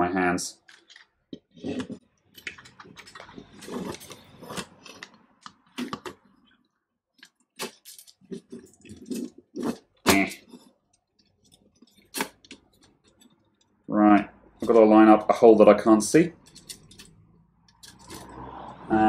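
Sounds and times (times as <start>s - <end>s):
rustling and scraping: 0.6s - 6.6s, 7.6s - 13.8s, 16.3s - 18.8s.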